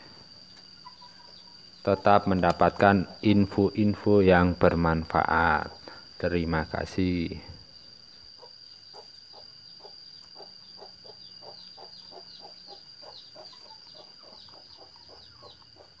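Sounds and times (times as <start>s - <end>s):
crickets chirring: 0.0s - 16.0s.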